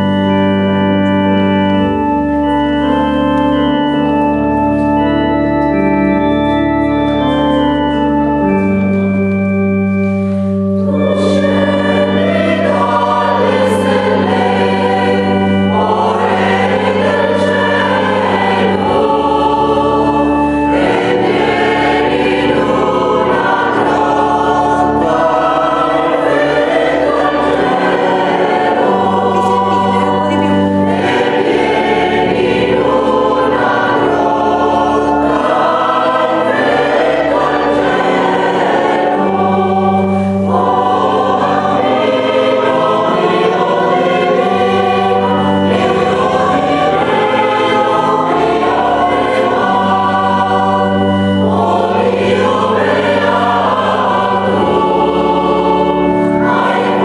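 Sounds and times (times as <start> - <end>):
sustained organ bass notes: 0.0 - 57.0
mixed choir singing: 10.8 - 57.0.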